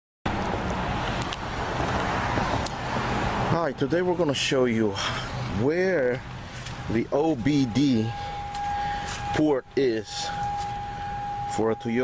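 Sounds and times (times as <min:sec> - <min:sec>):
low rumble of outdoor noise: 0:00.3 - 0:12.0.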